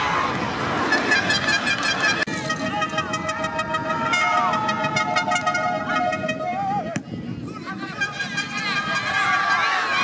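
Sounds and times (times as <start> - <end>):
crowd noise: 0.0 - 10.0
horns blown by spectators: 0.6 - 7.0, 7.7 - 10.0.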